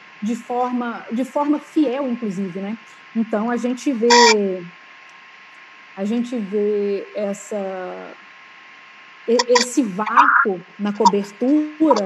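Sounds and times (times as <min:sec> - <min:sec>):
faint background hiss: 0:00.0 - 0:12.0
woman speaking: 0:00.2 - 0:04.8, 0:06.0 - 0:08.2, 0:09.3 - 0:12.0
thin steady tone: 0:04.0 - 0:04.6, 0:07.6 - 0:12.0.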